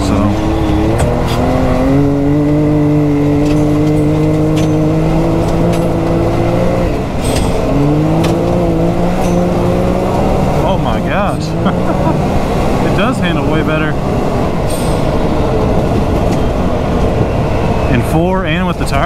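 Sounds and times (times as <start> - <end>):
engine revving: 0.0 - 19.0.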